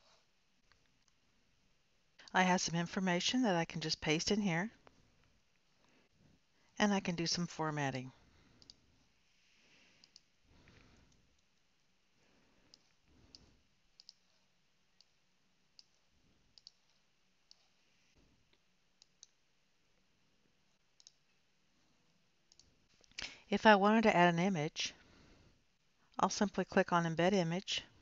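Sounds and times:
computer mouse clicks: 0:08.6 - 0:08.8, 0:10.0 - 0:11.5, 0:12.7 - 0:15.2, 0:15.8 - 0:17.8, 0:21.0 - 0:21.2, 0:22.5 - 0:23.3.

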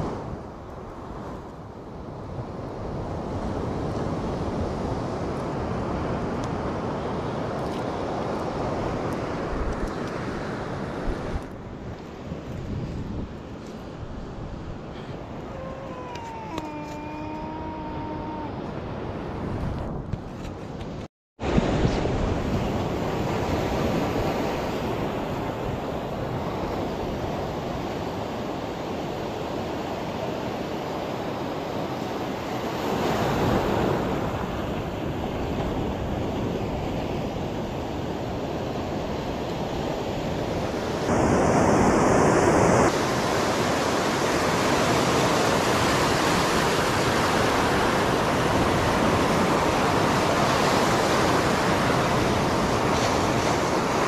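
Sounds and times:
wind on microphone: 0:00.0 - 0:54.0
ocean surf breaking: 0:02.1 - 0:20.0, 0:21.4 - 0:54.0.

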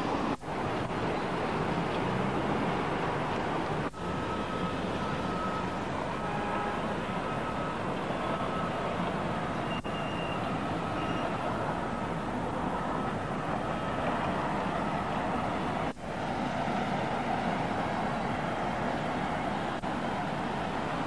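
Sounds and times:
distant traffic rumble: 0:00.0 - 0:21.0.

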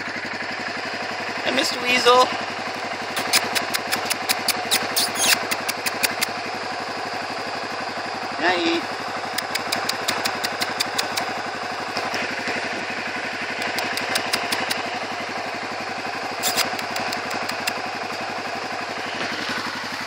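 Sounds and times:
engine idling: 0:00.0 - 0:20.0
sharp clicks: 0:03.1 - 0:06.4, 0:09.3 - 0:11.4, 0:13.6 - 0:14.9, 0:16.4 - 0:17.8.

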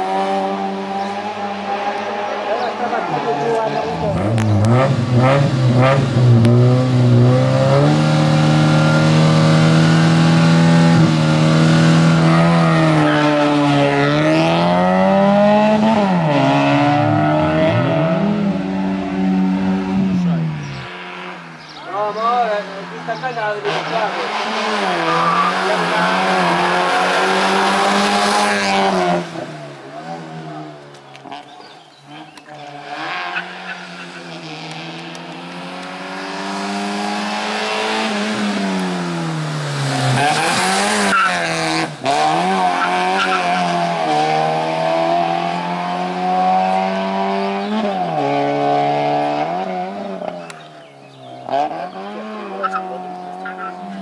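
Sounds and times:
car engine revving: 0:00.0 - 0:54.0
tyres squealing: 0:40.2 - 0:41.8.

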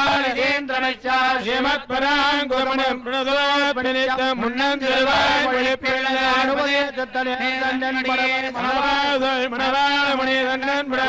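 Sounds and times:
men chanting into microphones: 0:00.0 - 0:11.0.

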